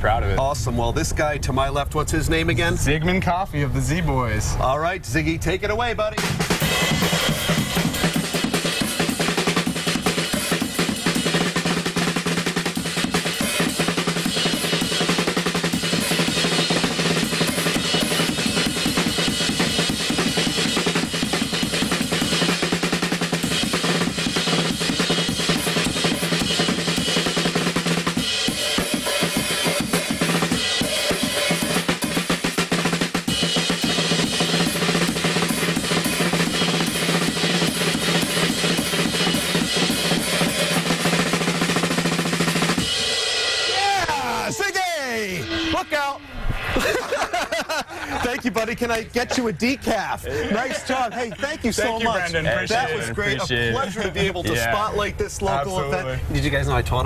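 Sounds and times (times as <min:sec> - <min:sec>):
drum kit playing: 0:05.9 - 0:49.5.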